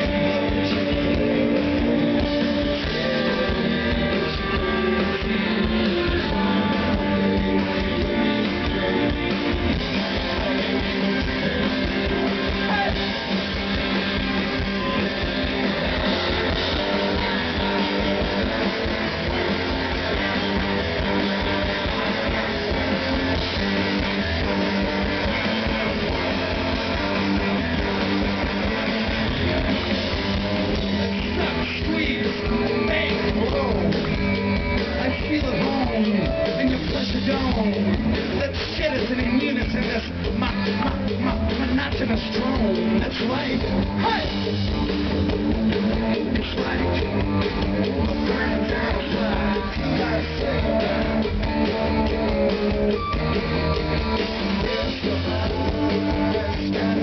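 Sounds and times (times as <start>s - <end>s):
drums: 0.0s - 57.0s
electric guitars: 0.0s - 57.0s.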